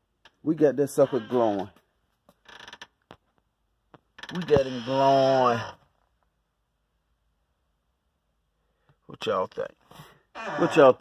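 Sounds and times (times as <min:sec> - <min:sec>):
faint creak: 0:00.2 - 0:03.2, 0:04.0 - 0:06.1, 0:10.3 - 0:11.0.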